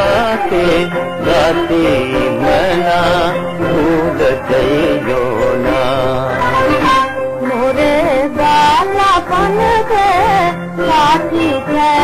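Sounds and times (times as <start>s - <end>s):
old film song with vibrato: 0.0s - 12.0s.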